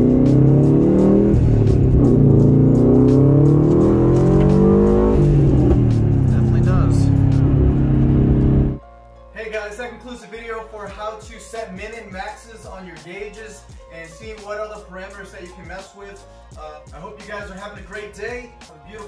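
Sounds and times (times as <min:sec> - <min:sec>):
car engine accelerating hard: 0:00.0 - 0:08.8.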